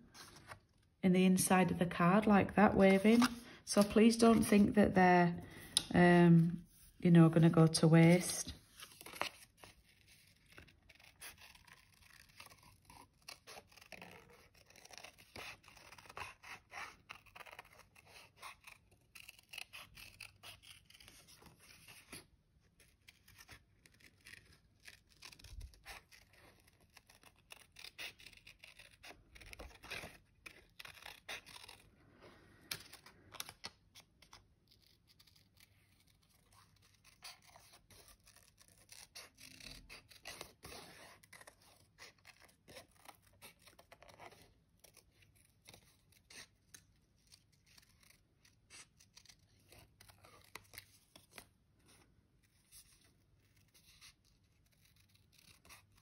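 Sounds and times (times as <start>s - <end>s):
scissors snipping paper: 9.0s - 22.2s, 22.8s - 31.8s, 32.6s - 51.4s, 53.5s - 56.0s.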